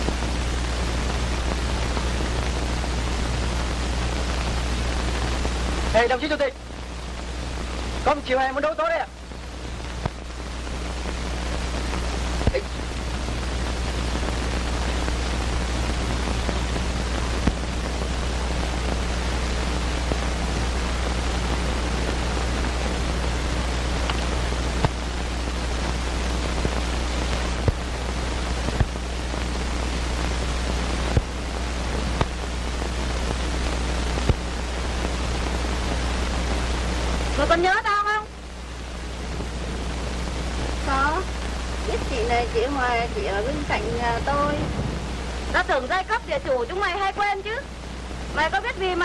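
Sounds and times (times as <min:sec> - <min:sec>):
film soundtrack hiss and hum: 0:00.0 - 0:49.0.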